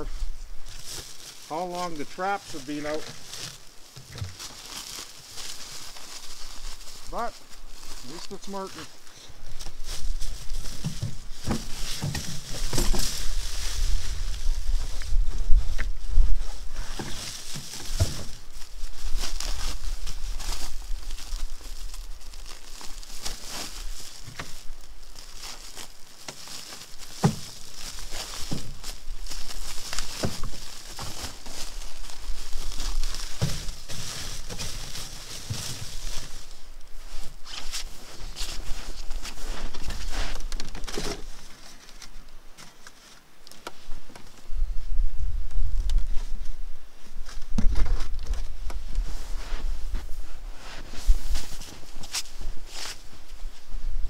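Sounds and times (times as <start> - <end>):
sack rustling and crinkling: 0.0 - 43.1, 46.0 - 54.0
wind rumble on microphone: 12.8 - 16.9.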